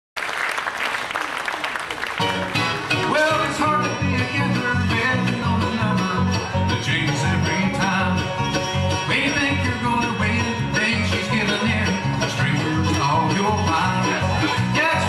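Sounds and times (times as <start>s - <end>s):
acoustic guitar picking: 2.2s - 15.0s
banjo picking: 2.2s - 15.0s
bass line: 2.2s - 15.0s
mandolin picking: 2.2s - 15.0s.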